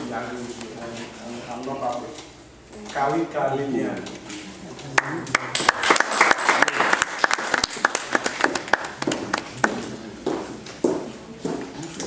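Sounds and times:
audience clapping: 0:05.0 - 0:10.0.

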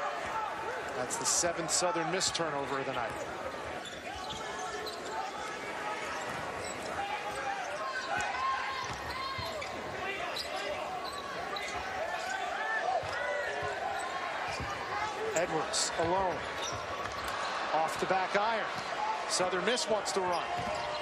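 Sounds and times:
arena crowd noise: 0:00.0 - 0:21.0
sneakers squeaking: 0:02.2 - 0:18.1, 0:18.7 - 0:19.0, 0:20.0 - 0:21.0.

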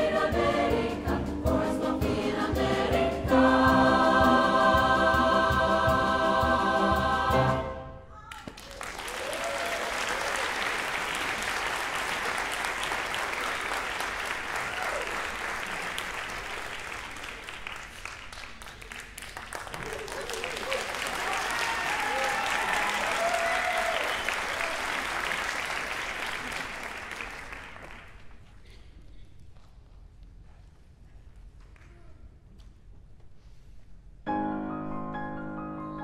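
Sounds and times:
choir singing with piano: 0:00.0 - 0:08.0
audience applause: 0:08.4 - 0:28.4.

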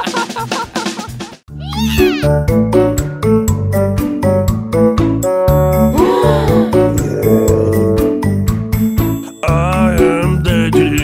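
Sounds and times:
upbeat children's song: 0:09.3 - 0:11.0.

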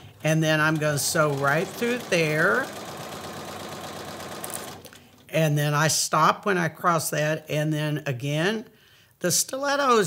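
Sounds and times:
electric sewing machine stitching: 0:00.0 - 0:05.3.

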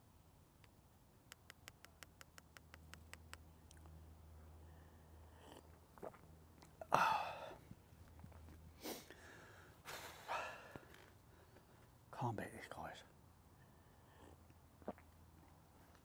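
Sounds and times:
man breathing and sighing: 0:06.8 - 0:07.7, 0:08.8 - 0:11.8.

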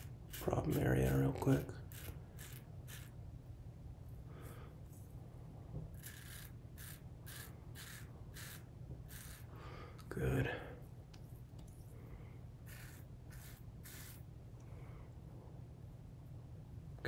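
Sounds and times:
razor scraping stubble: 0:00.0 - 0:03.2, 0:05.9 - 0:09.5, 0:12.7 - 0:14.2.

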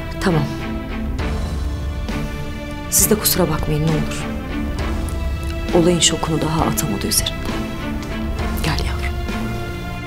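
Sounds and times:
soft sustained music: 0:00.0 - 0:10.0.

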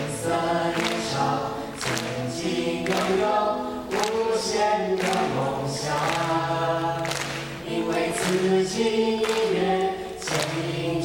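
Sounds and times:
young voices singing together: 0:00.0 - 0:11.0.

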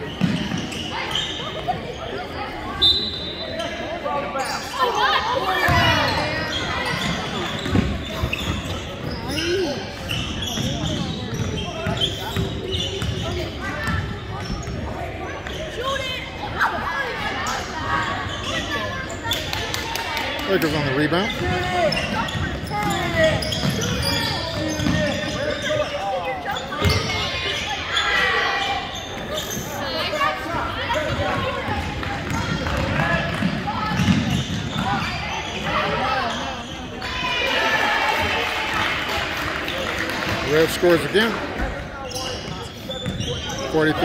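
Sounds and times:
voices echoing in hall: 0:00.0 - 0:44.0.

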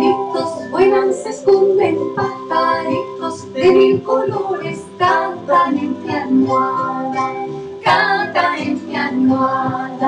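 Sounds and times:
woman and children singing: 0:00.0 - 0:10.0.

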